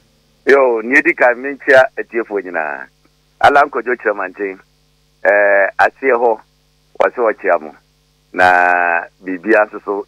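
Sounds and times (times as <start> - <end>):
low mains hum: 0.0 - 10.0
man speaking: 0.5 - 4.6, 5.2 - 6.4, 7.0 - 7.8, 8.4 - 10.0.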